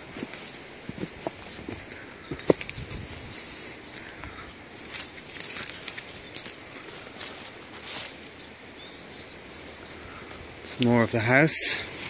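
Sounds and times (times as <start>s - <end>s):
leaves and twigs crackling: 0.0s - 12.0s.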